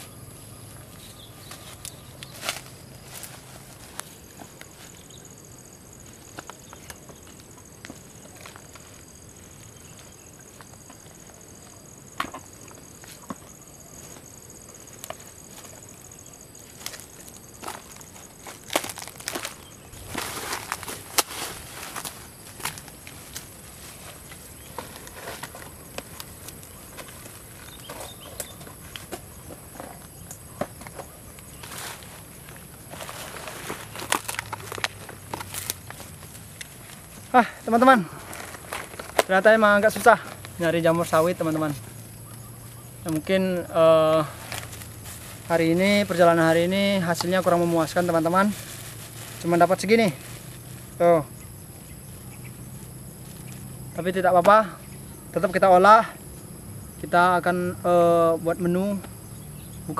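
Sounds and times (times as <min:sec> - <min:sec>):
footsteps through grass: 0:00.0 - 0:11.8, 0:12.8 - 0:53.7
faint high whine: 0:00.0 - 0:18.4
dry trunk fibre crackling: 0:00.7 - 0:13.4, 0:14.0 - 0:54.6.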